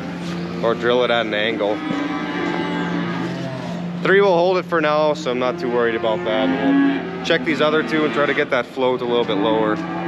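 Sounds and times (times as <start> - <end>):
barn equipment humming: 0.0 - 10.0
cattle calling: 0.0 - 10.0.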